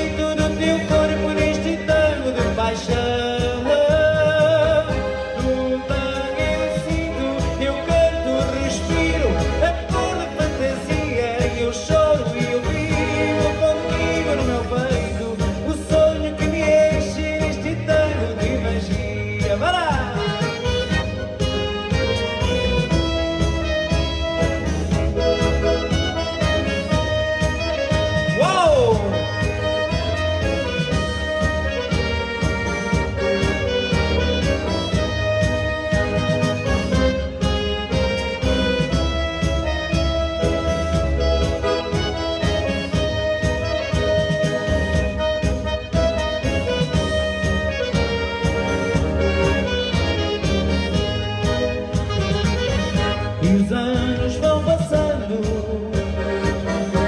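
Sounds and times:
accordion playing tango melody: 0.0s - 57.0s
backing band with steady beat: 0.0s - 57.0s.

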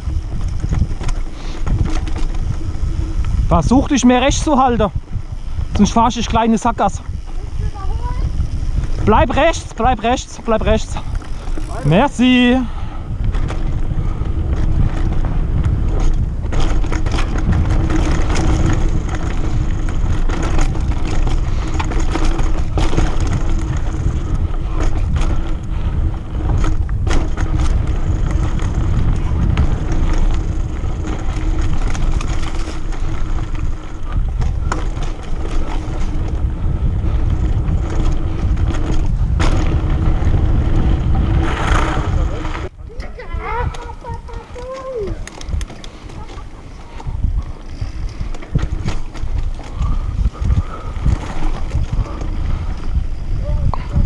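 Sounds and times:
bike knocking and rattling: 0.0s - 54.0s
bike tyre noise: 0.0s - 54.0s
wind rumble on microphone: 0.0s - 54.0s.

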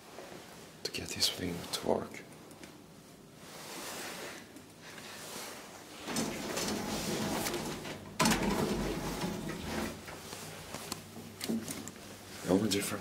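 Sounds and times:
elevator doors sliding and rattling: 5.9s - 10.4s.

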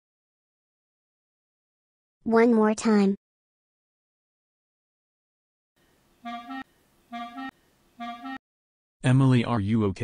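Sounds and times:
clarinet two-note phrase: 6.2s - 8.4s.

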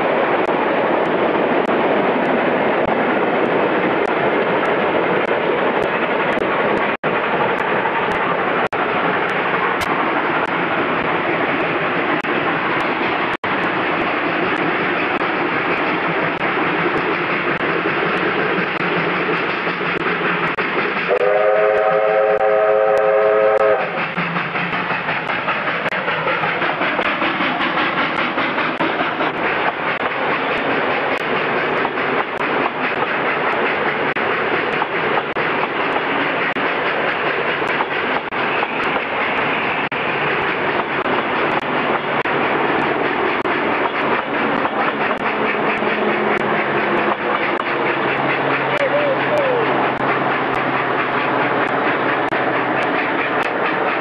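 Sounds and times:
steam locomotive running: 0.0s - 54.0s
multi-note steam whistle: 21.1s - 24.0s.

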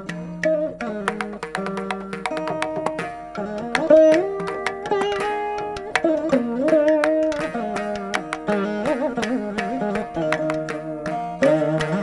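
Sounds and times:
veena plucked notes: 0.0s - 12.0s.

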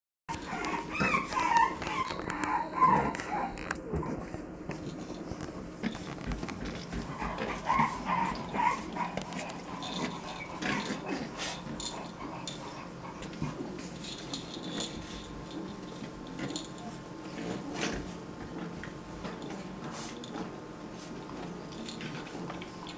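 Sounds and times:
puppies yipping: 0.3s - 4.4s, 7.0s - 13.2s
puppies growling: 0.3s - 22.9s.

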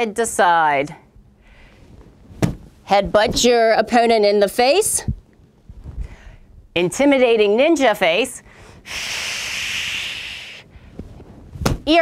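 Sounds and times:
palms slapping rubber dummy: 2.4s - 3.4s, 11.6s - 11.9s
hissing breath through teeth: 8.9s - 10.7s.

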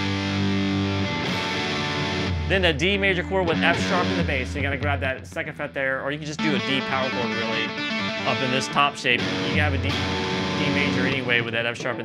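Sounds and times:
overdriven electric guitar chords: 0.0s - 4.9s, 6.4s - 11.5s.

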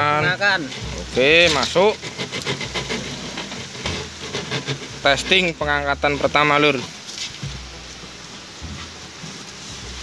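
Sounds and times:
water trickling: 0.0s - 10.0s
wet fishing net rustling: 0.0s - 10.0s.

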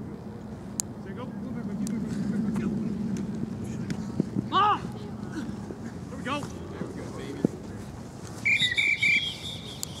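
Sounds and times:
referee's whistle blasts: 8.4s - 9.8s.

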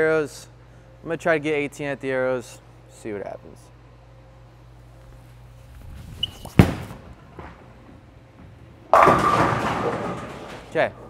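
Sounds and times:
bowling ball rolling: 5.8s - 11.0s
bowling ball thud on lane: 6.4s - 10.7s
bowling pins clattering: 6.6s - 11.0s.

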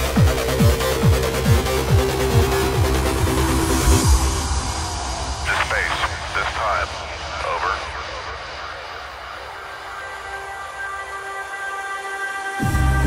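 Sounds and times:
held synth notes: 0.0s - 6.3s
rushing wash of noise: 1.2s - 12.4s.

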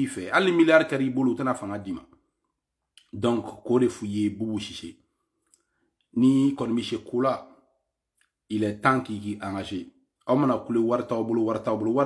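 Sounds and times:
man speaking: 0.0s - 2.2s, 3.0s - 5.0s, 6.1s - 7.7s, 8.5s - 12.0s.

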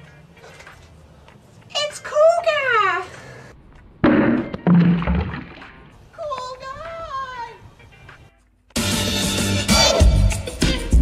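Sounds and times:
cup clattering on concrete: 4.1s - 5.8s.

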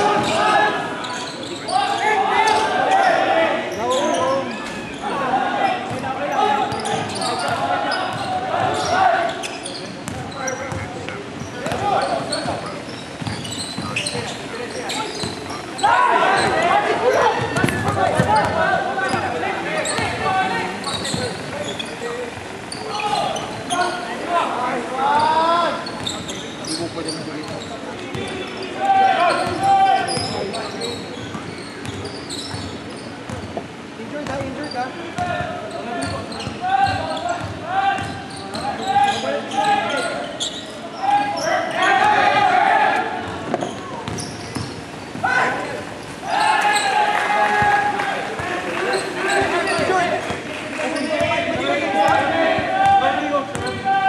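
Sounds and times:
players shouting: 0.0s - 9.5s, 13.9s - 25.9s, 28.3s - 30.5s, 35.2s - 54.0s
basketball bouncing on hardwood: 10.0s - 10.9s.

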